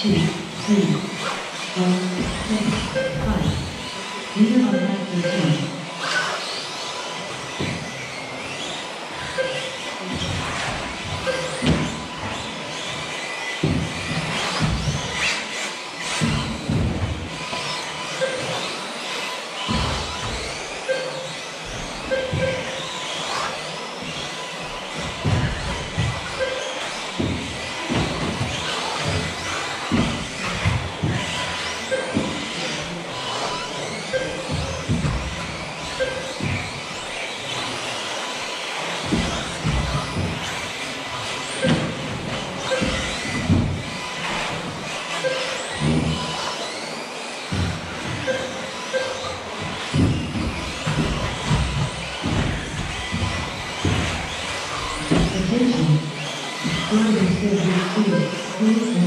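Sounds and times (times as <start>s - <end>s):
rc car motors whining: 0.0s - 59.0s
rc cars knocking track borders: 0.0s - 59.0s
short beeps: 2.6s - 3.6s, 4.6s - 5.8s.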